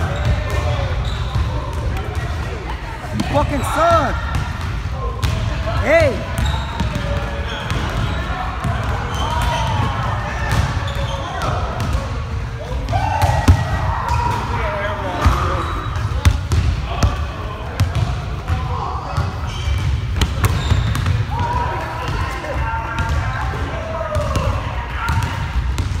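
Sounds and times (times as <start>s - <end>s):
people shouting and talking: 0.0s - 26.0s.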